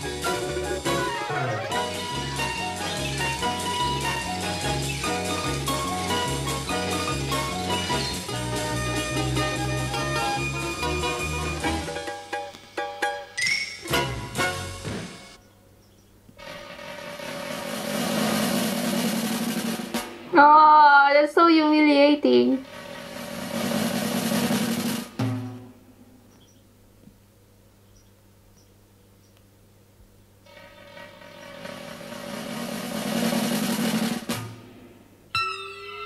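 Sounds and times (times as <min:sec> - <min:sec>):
cartoon music: 0:00.0 - 0:12.2, 0:35.3 - 0:36.0
drum roll: 0:00.0 - 0:15.4, 0:16.4 - 0:26.1, 0:30.5 - 0:35.4.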